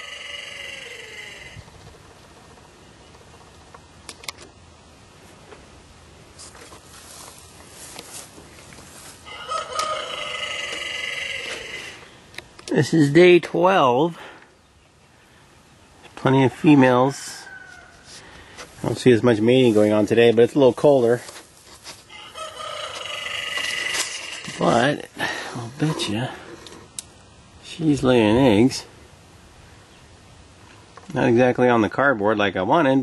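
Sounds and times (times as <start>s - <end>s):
rooster crowing: 0.0s - 1.6s, 9.2s - 12.1s, 16.5s - 18.4s, 22.1s - 24.6s.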